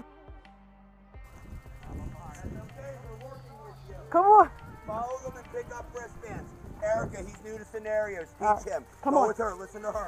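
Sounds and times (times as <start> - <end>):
steady low hum: 1.2 - 10.0
distant voices calling out: 1.3 - 10.0.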